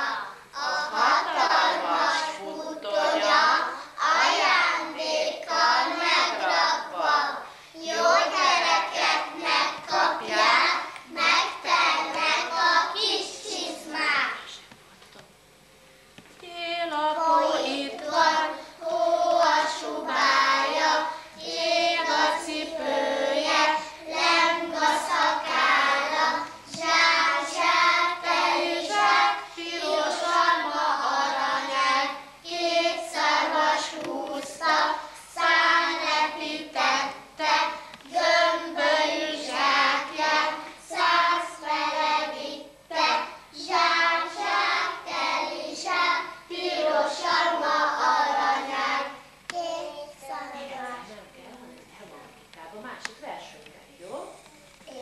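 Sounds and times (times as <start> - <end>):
children singing: 0.0 - 13.9, 17.2 - 49.2.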